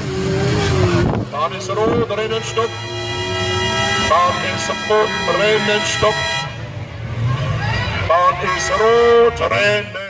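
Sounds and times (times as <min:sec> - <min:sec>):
distant car engines: 0:00.0 - 0:10.0.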